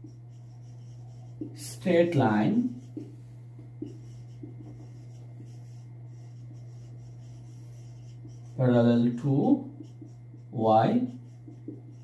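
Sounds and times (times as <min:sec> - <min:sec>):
marker writing on whiteboard: 0:00.0 - 0:12.0
steady low hum: 0:00.0 - 0:12.0.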